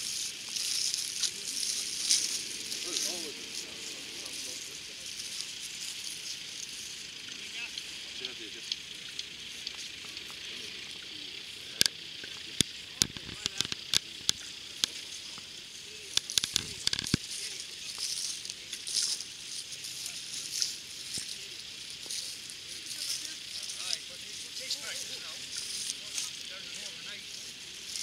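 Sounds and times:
faint distant voices: 0:00.0 - 0:28.0
steady hiss: 0:00.0 - 0:28.0
sharp clicks and knocks: 0:12.6 - 0:15.0.

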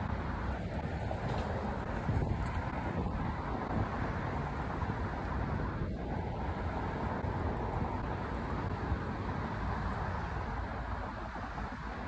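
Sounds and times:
skate wheels rolling on asphalt: 0:00.0 - 0:12.0
wind rushing over microphone: 0:00.0 - 0:12.0.

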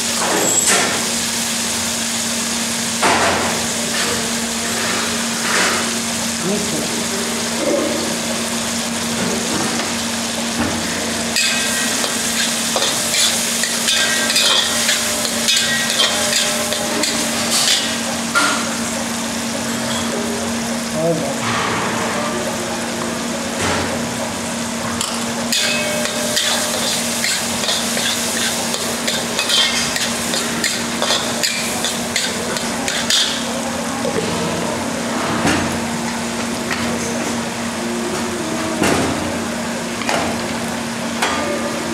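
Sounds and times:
masala sizzling in ghee: 0:00.8 - 0:21.0, 0:22.5 - 0:34.0.

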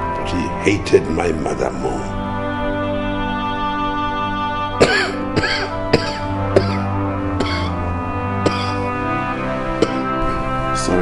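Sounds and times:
soft background music: 0:00.0 - 0:11.0
man coughing and clearing throat: 0:04.8 - 0:07.8, 0:08.5 - 0:08.9, 0:09.8 - 0:10.1.

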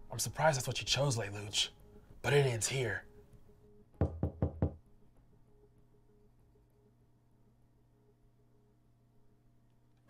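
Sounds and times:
knocking on door: 0:04.0 - 0:04.8.

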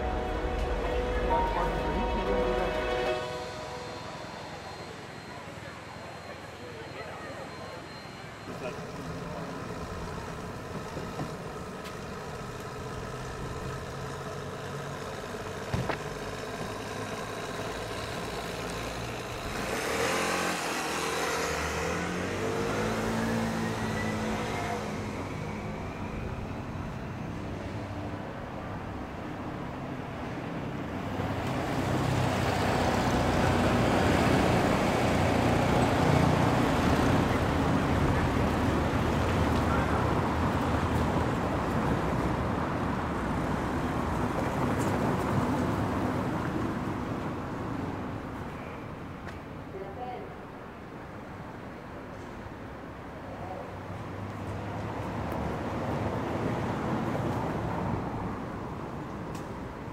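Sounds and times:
cars passing on paved street: 0:00.0 - 0:59.9
car engine revving up: 0:19.4 - 0:25.2.

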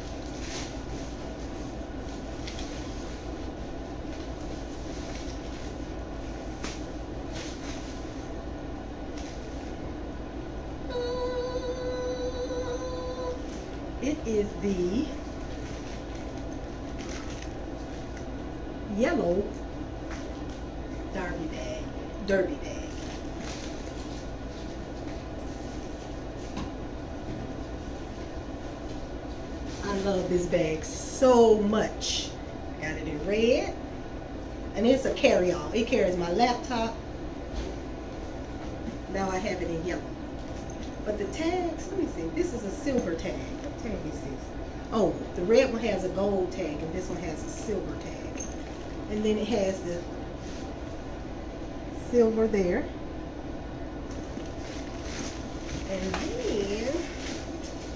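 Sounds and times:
low rumble and hiss: 0:00.0 - 0:57.9.

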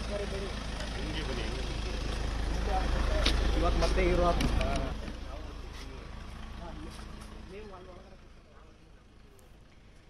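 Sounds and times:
distant people talking: 0:00.0 - 0:09.7
outdoor background noise: 0:00.0 - 0:10.0.

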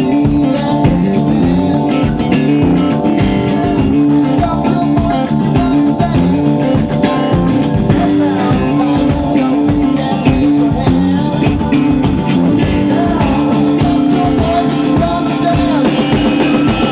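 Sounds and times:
drum beat: 0:00.0 - 0:16.9
guitar chords: 0:00.0 - 0:16.9.

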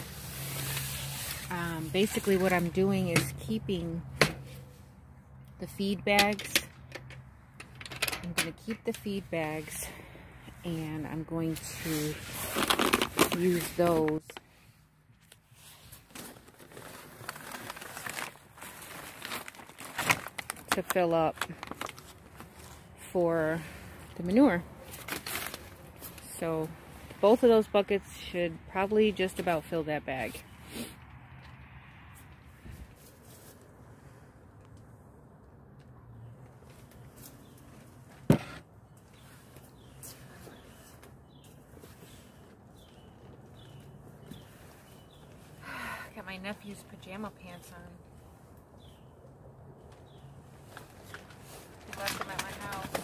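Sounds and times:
plastic bags crinkling: 0:16.0 - 0:22.7.

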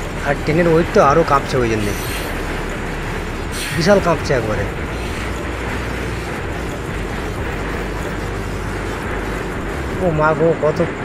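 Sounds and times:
freight train passing on bridge: 0:00.0 - 0:11.0.

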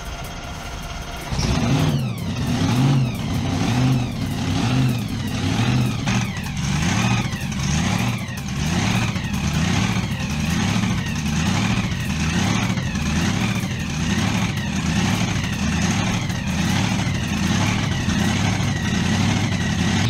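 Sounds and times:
vehicle engine revving with whine: 0:00.0 - 0:20.0.

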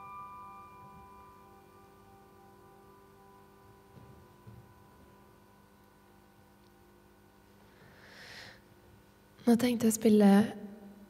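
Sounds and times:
piano chord ringing out: 0:00.0 - 0:06.6.

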